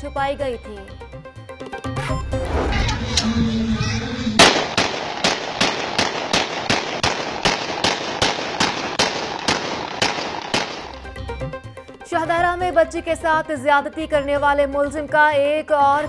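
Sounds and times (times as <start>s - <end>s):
handgun shots: 4.4s - 11.0s.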